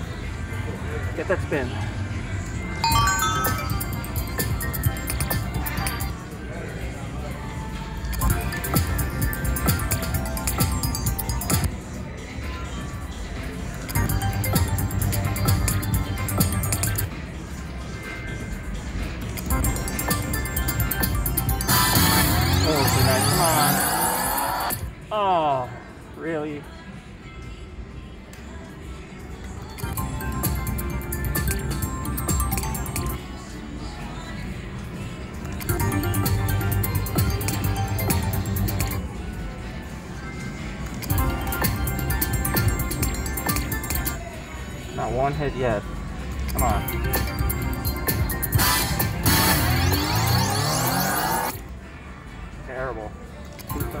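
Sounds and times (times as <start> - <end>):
casino background: 2.8 - 6.1
slot machine gliding tones: 2.8 - 6.2, 8.1 - 11.7, 13.9 - 17.1, 19.4 - 24.9, 29.8 - 33.2, 35.6 - 39.0, 41.0 - 44.2, 46.5 - 51.6, 53.6 - 54.0.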